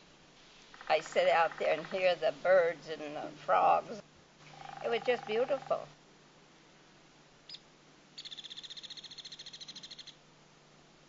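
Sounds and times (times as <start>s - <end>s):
songbird chirp: 0.0s - 6.0s, 7.4s - 10.2s
songbird high-pitched trill: 8.2s - 10.2s.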